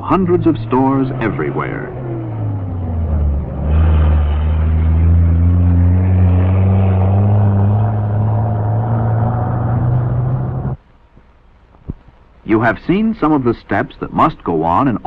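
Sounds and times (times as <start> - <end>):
truck engine pulling away: 0.0 - 10.8.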